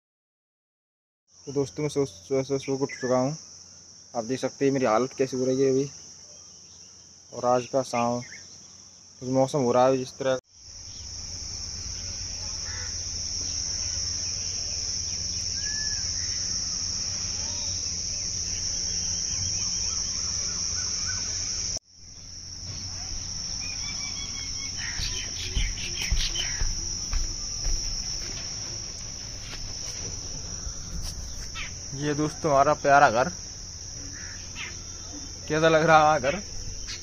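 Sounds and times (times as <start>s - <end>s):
crickets chirping: 1.3s - 37.0s
knocks and thumps: 25.0s - 31.5s.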